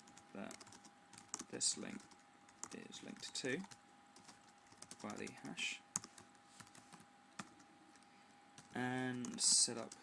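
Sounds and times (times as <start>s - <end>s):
faint steady hum: 0.0s - 10.0s
typing on computer keyboard: 0.1s - 7.6s, 8.6s - 10.0s.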